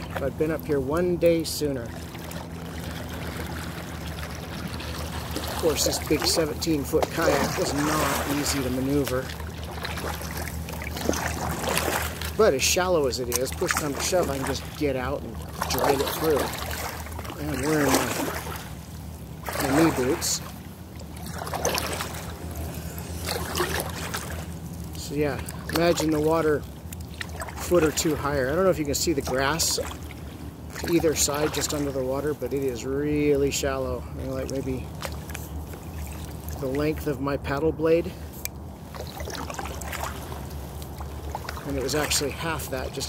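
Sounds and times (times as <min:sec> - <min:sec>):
paddle splashes and drips: 0:00.0 - 0:43.0
steady low hum: 0:00.0 - 0:43.0
steady low rumble: 0:00.0 - 0:43.0
water lapping against kayak hull: 0:00.0 - 0:43.0.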